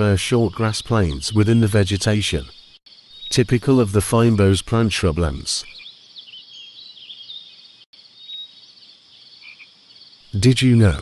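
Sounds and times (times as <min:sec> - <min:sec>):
high chirping animal calls: 0:00.0 - 0:09.7.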